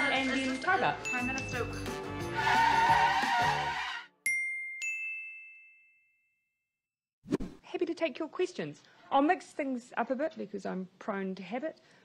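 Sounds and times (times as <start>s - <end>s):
bright chime dings: 1.0s - 1.8s, 4.2s - 6.5s.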